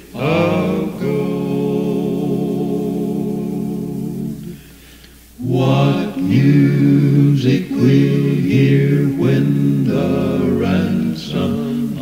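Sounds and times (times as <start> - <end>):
a cappella quartet singing: 0.0 - 12.0.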